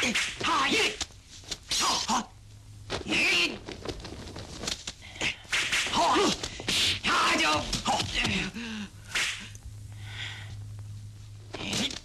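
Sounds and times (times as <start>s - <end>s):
steady low hum: 0.0s - 12.0s
sharp swish of a strike: 5.5s - 6.0s.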